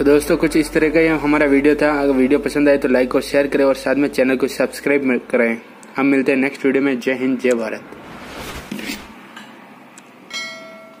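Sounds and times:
bell chime: 0:10.3 - 0:11.0.

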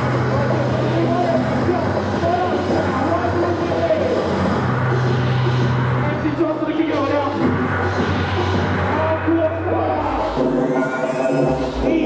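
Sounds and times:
rave music with heavy bass: 0:00.0 - 0:12.0.

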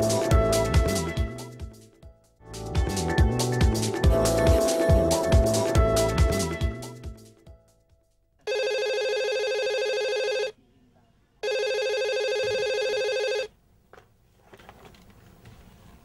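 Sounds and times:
theme music: 0:00.0 - 0:07.6
telephone ringing: 0:08.5 - 0:10.6, 0:11.4 - 0:13.5.

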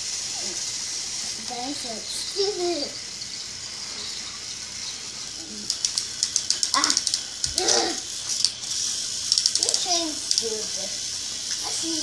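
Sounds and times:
plastic toy trains clicking and rattling: 0:00.0 - 0:03.0, 0:05.2 - 0:12.0.

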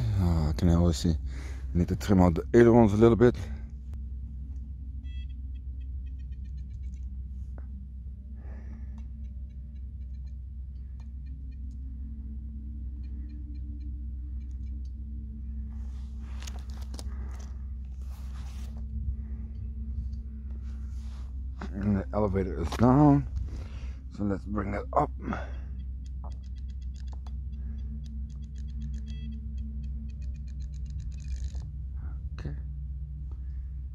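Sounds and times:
wind rumble on microphone: 0:12.9 - 0:24.7
rustling: 0:15.6 - 0:19.0.

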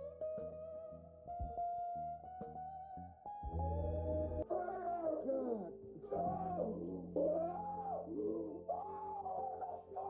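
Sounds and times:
man screaming: 0:04.5 - 0:10.0.

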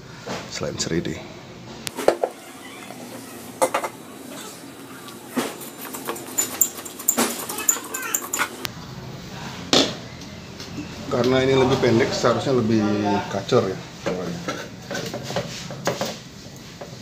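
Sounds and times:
metallic clinks and knocks: 0:05.3 - 0:08.7.

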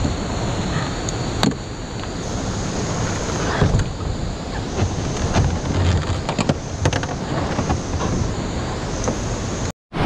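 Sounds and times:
whitewater rapid rushing: 0:00.0 - 0:10.0.

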